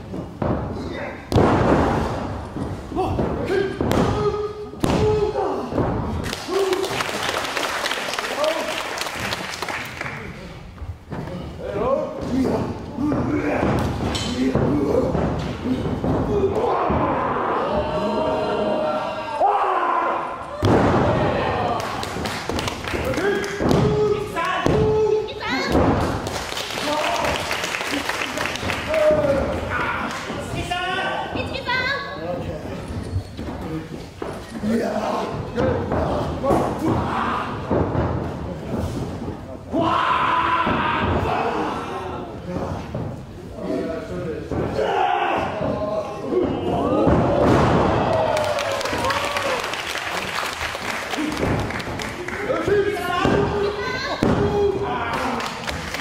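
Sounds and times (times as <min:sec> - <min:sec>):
crowd clapping and shouting: 0:06.2 - 0:10.4, 0:21.6 - 0:23.6, 0:26.2 - 0:30.3, 0:48.0 - 0:52.8, 0:55.1 - 0:56.0.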